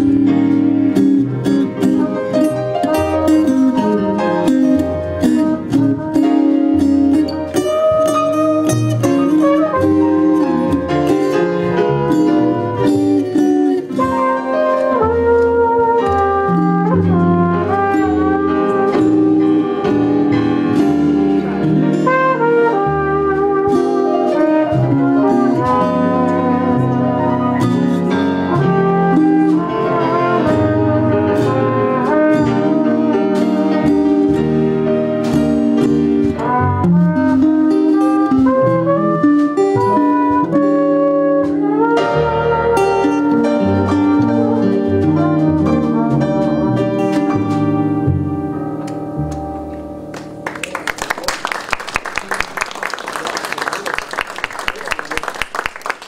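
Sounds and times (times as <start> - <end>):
drums: 0.0 - 26.8, 27.6 - 49.6
upright bass: 0.0 - 50.6
electric guitar: 0.0 - 51.4
jazz band playing: 0.0 - 54.9
trumpet: 1.8 - 49.7.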